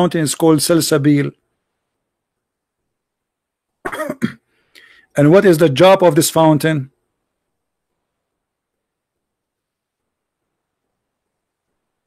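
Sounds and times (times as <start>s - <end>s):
man coughing: 3.8s - 4.4s.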